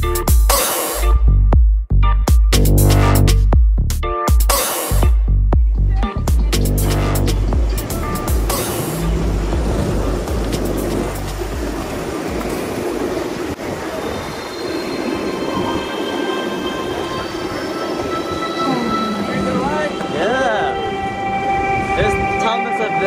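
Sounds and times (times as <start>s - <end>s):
electronic music with heavy bass: 0.0s - 12.0s
skateboard wheels rolling on asphalt: 7.5s - 15.6s
thin high-pitched tones: 14.5s - 23.0s.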